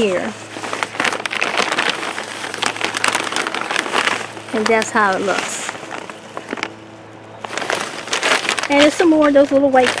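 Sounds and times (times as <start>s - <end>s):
faint steady hum: 0.0s - 10.0s
plastic bag crinkling: 0.0s - 10.0s.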